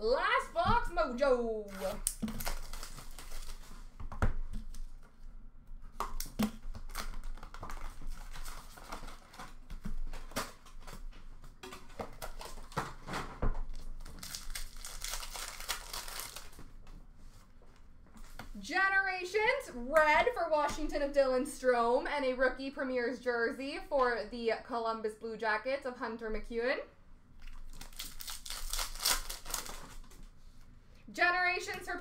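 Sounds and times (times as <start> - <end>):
wrapper crinkling and tearing: 1.6 - 4.0, 6.1 - 16.8, 27.4 - 30.2.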